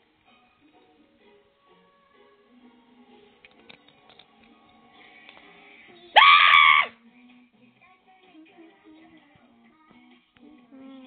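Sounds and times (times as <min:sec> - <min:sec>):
high-pitched scream: 0:06.2 - 0:07.0.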